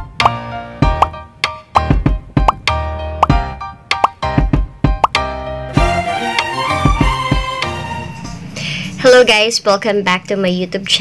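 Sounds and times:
upbeat background music: 0.0 - 9.3
cartoon pop sound effects: 1.0 - 1.2, 2.5 - 3.4.

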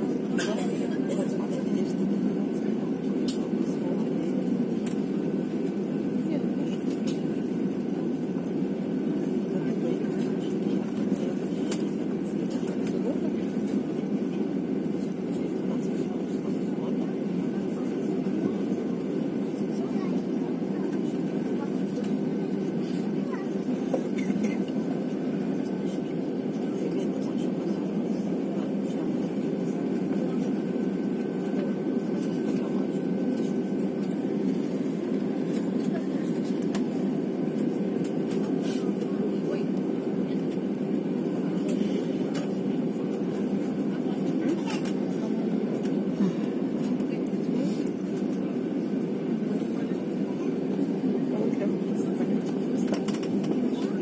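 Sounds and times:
faint engine whine: 0.0 - 54.0
indistinct cabin voices: 0.0 - 54.0
jet engines taxiing drone: 0.0 - 54.0.

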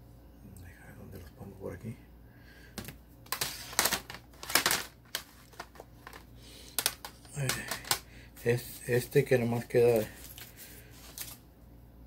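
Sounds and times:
paper record sleeves rustling: 3.3 - 11.4.

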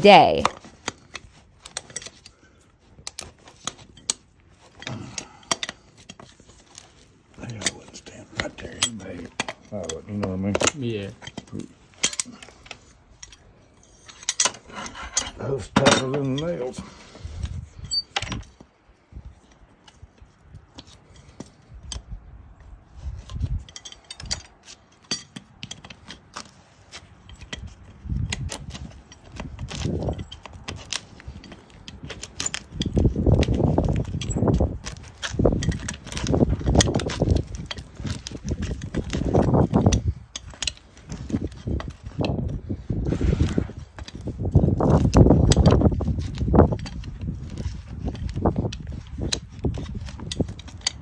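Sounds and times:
metal pick scraping dirt from hoof: 0.4 - 18.6, 22.8 - 51.0.

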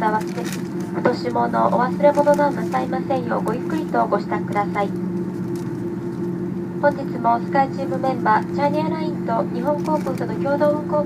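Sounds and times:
aircraft cabin low hum: 0.0 - 11.0
passengers talking: 0.0 - 11.0.

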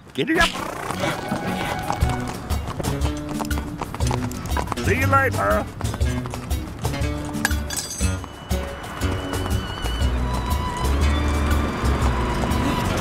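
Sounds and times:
horses galloping clip-clop: 0.0 - 13.0.

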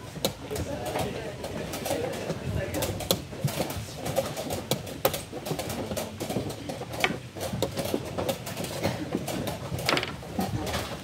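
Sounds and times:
low background murmur: 0.0 - 11.0
chess pieces clicking on board: 0.2 - 11.0.

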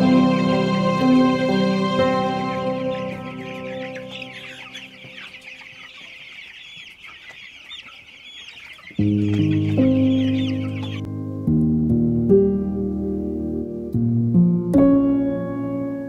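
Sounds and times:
music: 0.0 - 5.5, 8.9 - 16.0
chicks peeping: 1.0 - 11.1.

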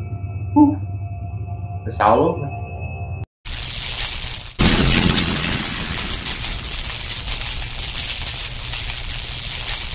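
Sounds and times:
faint irregular crackles: 3.5 - 9.9.

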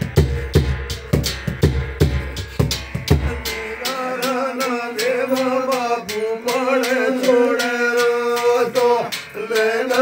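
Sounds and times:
deep drum thuds: 0.0 - 3.7.

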